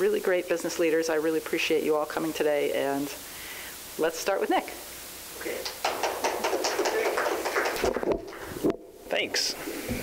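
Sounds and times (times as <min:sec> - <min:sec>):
audience clapping: 0:05.6 - 0:08.5.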